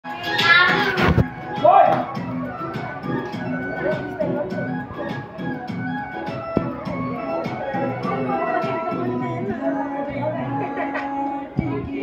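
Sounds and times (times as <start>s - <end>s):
music: 0.0s - 12.0s
children calling out together: 0.1s - 1.1s.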